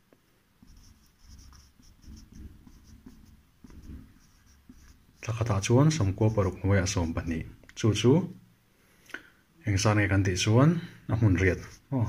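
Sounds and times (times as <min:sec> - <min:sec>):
marker pen scratching: 0:00.6 - 0:07.7, 0:11.4 - 0:11.8
man speaking: 0:05.2 - 0:08.4, 0:09.6 - 0:12.0.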